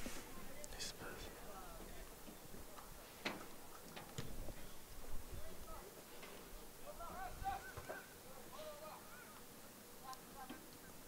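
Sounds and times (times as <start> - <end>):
sharp knocks of ball kicks: 4.2 - 4.4
players shouting in distance: 6.8 - 9.5.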